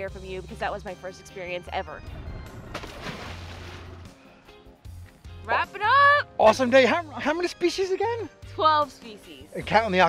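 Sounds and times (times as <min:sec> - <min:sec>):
background music with bass line: 0:00.0 - 0:10.0
splash into water: 0:02.6 - 0:04.2.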